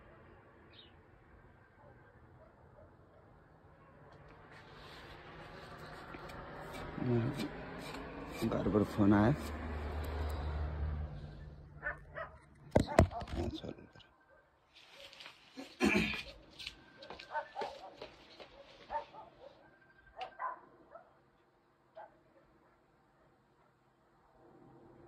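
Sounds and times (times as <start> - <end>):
dog barking: 1.7 - 4.1, 11.8 - 13.4, 17.2 - 21.2, 21.9 - 23.8.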